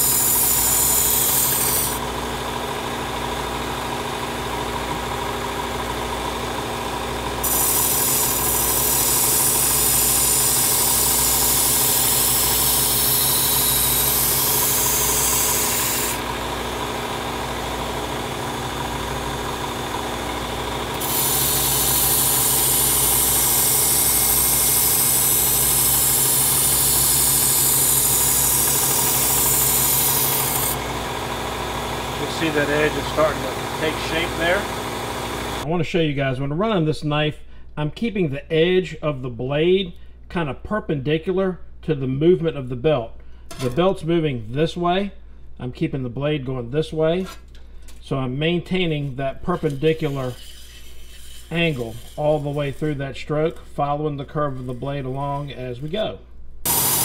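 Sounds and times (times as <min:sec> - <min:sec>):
knife grinding on abrasive belt: 0:00.0 - 0:02.0, 0:07.4 - 0:16.2, 0:21.0 - 0:30.8, 0:49.4 - 0:55.5
motor humming: 0:00.0 - 0:35.7, 0:56.6 - 0:57.0.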